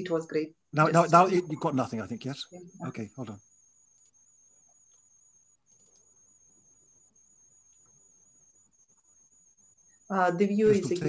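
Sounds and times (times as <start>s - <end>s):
faint high-pitched whine: 0.0s - 11.0s.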